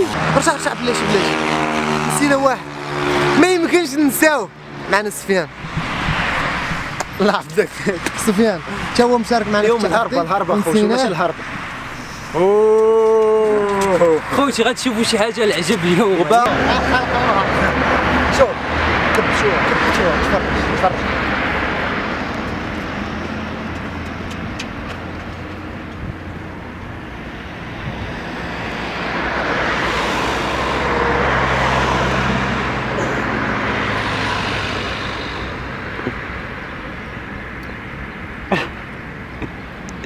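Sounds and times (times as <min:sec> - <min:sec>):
vehicles passing: 0:00.0 - 0:40.0.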